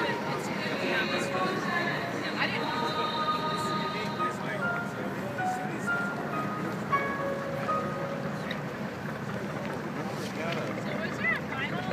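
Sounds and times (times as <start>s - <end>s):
girls choir singing: 0.0s - 4.4s
steady background noise: 0.0s - 11.9s.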